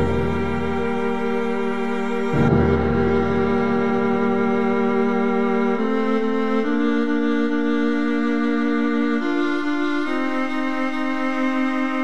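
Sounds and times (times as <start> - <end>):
sustained orchestral strings: 0.0 - 12.0.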